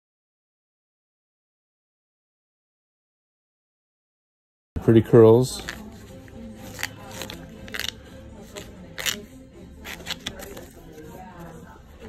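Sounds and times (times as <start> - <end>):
faint background music: 4.8 - 12.0
scissors snipping paper: 6.6 - 11.1.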